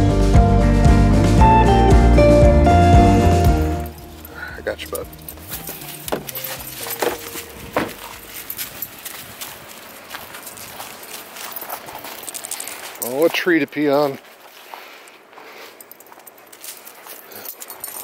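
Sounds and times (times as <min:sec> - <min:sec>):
footsteps on dry leaves and snow: 0:03.8 - 0:18.0.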